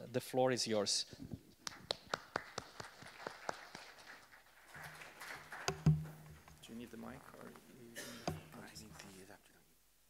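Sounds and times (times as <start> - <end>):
loud thump: 5.7 - 6.6
sharp taps: 5.7 - 6.7, 8.2 - 8.6.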